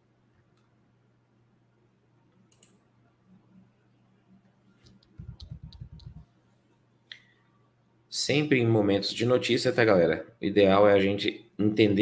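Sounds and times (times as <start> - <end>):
computer mouse clicking: 2.3 - 2.8, 4.8 - 6.2.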